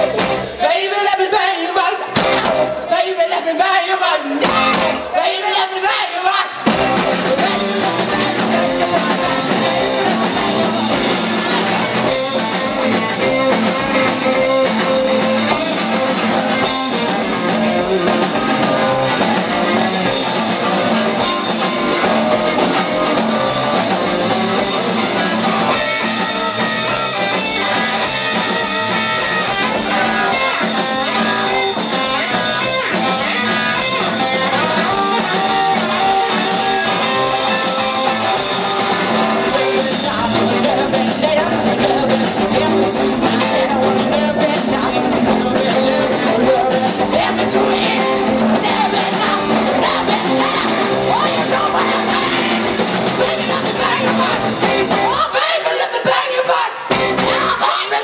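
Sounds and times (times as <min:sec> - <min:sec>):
drumming: 0:00.0 - 0:00.6, 0:02.1 - 0:02.8, 0:06.6 - 0:55.4, 0:56.9 - 0:57.8
electric guitar: 0:00.0 - 0:00.8, 0:01.8 - 0:03.0, 0:04.3 - 0:05.2, 0:06.6 - 0:55.6, 0:56.8 - 0:58.0
live rock band playing: 0:00.0 - 0:05.4, 0:06.5 - 0:55.7, 0:56.8 - 0:58.0.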